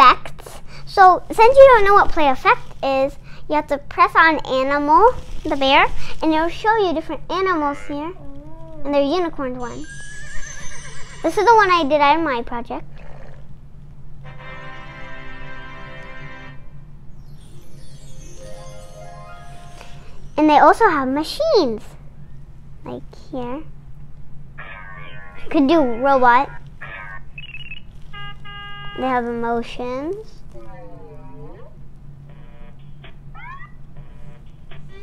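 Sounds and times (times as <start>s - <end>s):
rapid ringing trill: 9.6s - 12.1s, 17.1s - 21.2s
steady pitched electronic tone: 17.1s - 21.1s.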